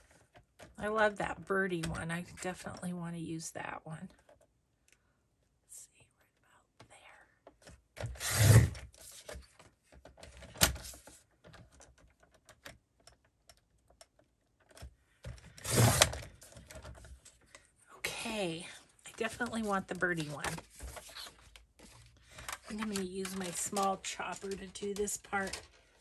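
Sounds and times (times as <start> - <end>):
paper trimmer blade cutting: 8.2 - 8.8, 15.6 - 16.2
paper shuffling: 19.1 - 26.0.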